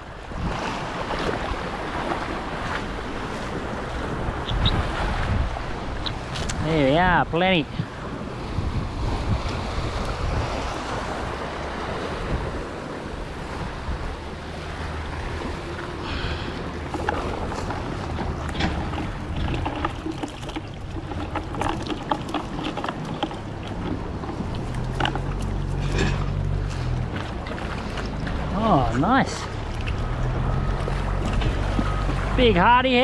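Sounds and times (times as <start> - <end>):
wind on microphone: 0.0 - 28.5
waves washing against rocks: 0.0 - 33.0
cast net clicking and rustling: 16.9 - 26.5.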